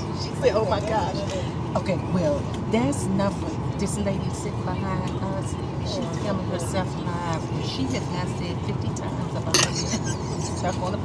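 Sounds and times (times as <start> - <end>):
passengers talking: 0.0 - 11.0.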